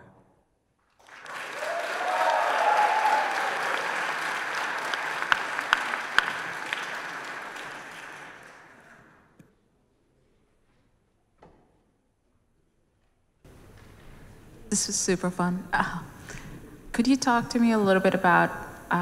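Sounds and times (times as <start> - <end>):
audience applauding: 1.0 - 9.3
single loud claps: 1.4 - 8.7.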